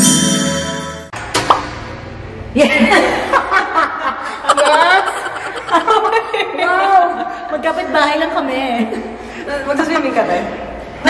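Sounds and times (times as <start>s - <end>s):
jingle with bell-like chimes: 0.0s - 1.1s.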